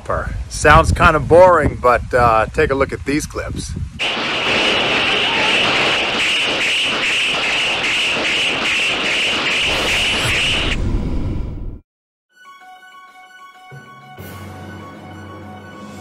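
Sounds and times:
dense gunfire: 0:04.0 - 0:10.8.

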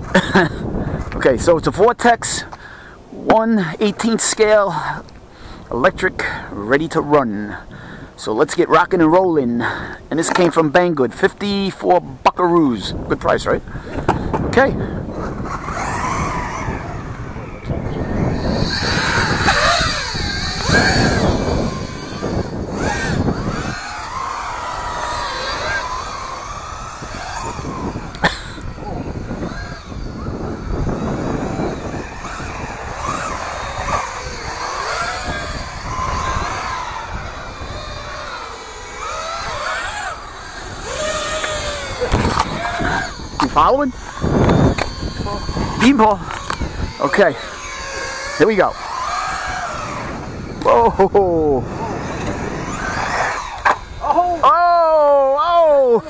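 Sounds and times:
tyre and wind noise on asphalt: 0:00.0 - 0:56.0
rc truck motor whining: 0:12.8 - 0:56.0.

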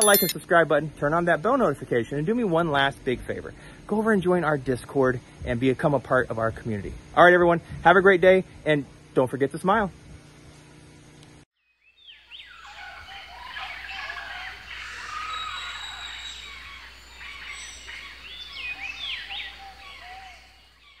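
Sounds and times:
birds singing and calling: 0:00.0 - 0:00.4, 0:11.8 - 0:21.0.

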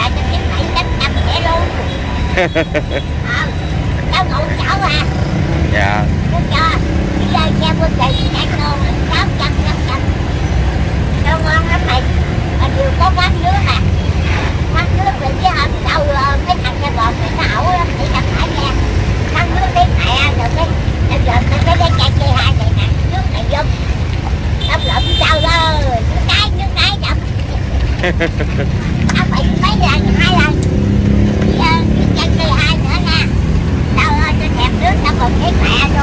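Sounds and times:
people talking: 0:00.0 - 0:10.2, 0:11.2 - 0:13.9, 0:14.7 - 0:23.8, 0:24.6 - 0:30.8, 0:31.4 - 0:33.3, 0:33.9 - 0:36.0
street traffic passing: 0:00.0 - 0:36.0.

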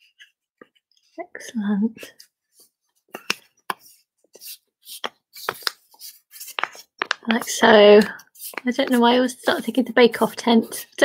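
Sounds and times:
paper being folded and creased: 0:02.6 - 0:07.5, 0:08.2 - 0:09.7.

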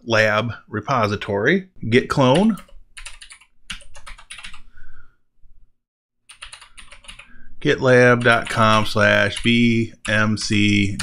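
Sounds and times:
computer keyboard typing: 0:02.2 - 0:04.6, 0:06.3 - 0:07.3, 0:08.0 - 0:11.0.

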